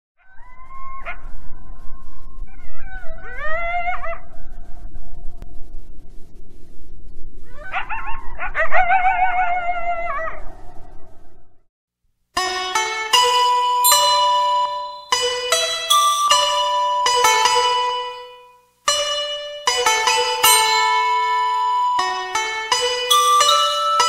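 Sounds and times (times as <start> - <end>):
coyotes howling and yipping: 0.2 - 4.8, 7.5 - 10.9.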